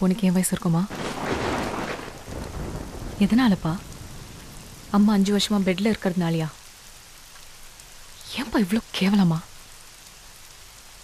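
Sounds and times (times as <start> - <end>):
heavy rain falling: 0.1 - 11.0
thunder rolling: 0.9 - 6.4.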